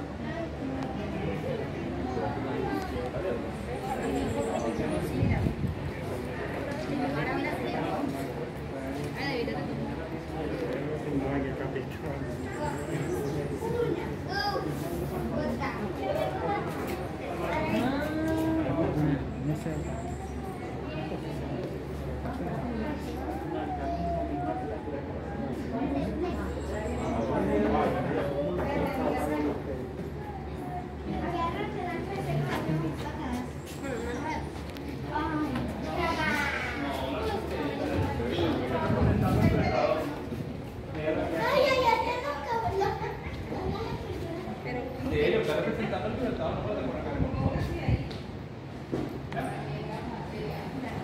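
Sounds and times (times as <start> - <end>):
people's voices: 0.0 - 51.0
child talking: 12.5 - 16.8, 34.1 - 38.7, 41.3 - 44.8.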